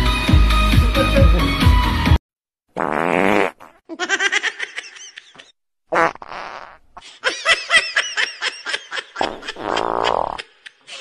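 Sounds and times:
buzzy fart noises: 2.8s - 3.8s, 5.9s - 6.8s, 9.2s - 10.4s.

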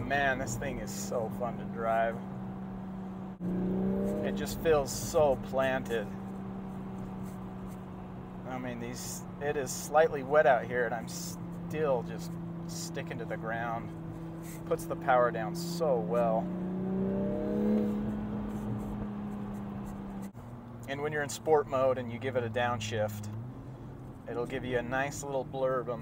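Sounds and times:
car engine drone in cabin: 0.0s - 26.0s
road noise: 0.0s - 26.0s.

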